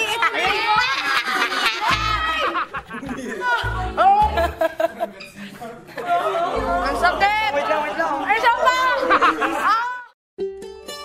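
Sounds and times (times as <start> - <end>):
several voices chattering: 0.0 - 10.1.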